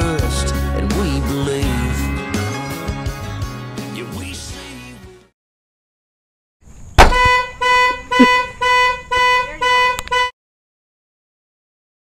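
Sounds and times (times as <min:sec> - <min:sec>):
car horn honking: 0:07.0 - 0:10.4.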